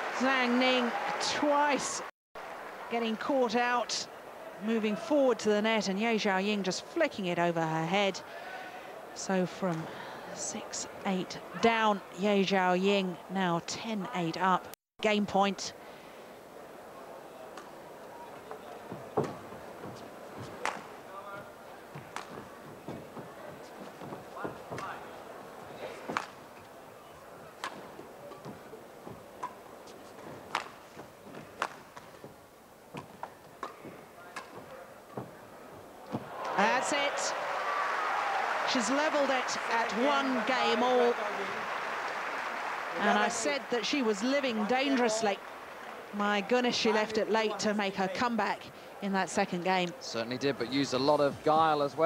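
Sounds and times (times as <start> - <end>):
racket hitting shuttlecock: 27.6 - 29.6, 30.4 - 32.1, 32.9 - 35.4
crowd cheering and shouting: 36.1 - 43.8.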